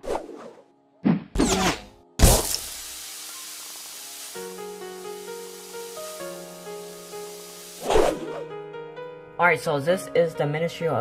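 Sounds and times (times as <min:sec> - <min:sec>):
noise hiss: 0:02.4 - 0:07.8.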